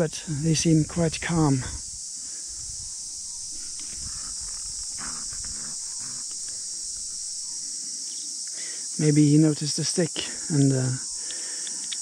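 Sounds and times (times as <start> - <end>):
shrill insect chorus: 0.0 - 12.0.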